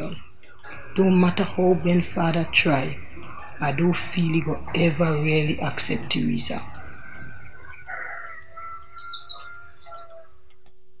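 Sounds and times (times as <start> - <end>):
high downward bird chirps: 0.0 - 10.5
birds chirping and calling: 0.0 - 10.7.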